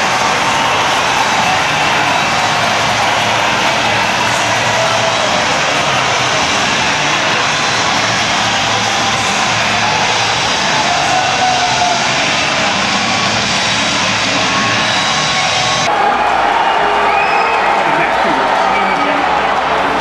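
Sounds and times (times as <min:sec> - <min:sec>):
crowd cheering: 0:00.0 - 0:20.0.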